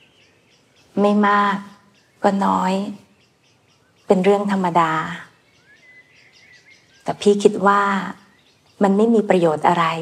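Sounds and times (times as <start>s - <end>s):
faint birds chirping: 0.0s - 10.0s
woman speaking: 1.0s - 3.1s, 4.1s - 5.4s, 7.0s - 10.0s.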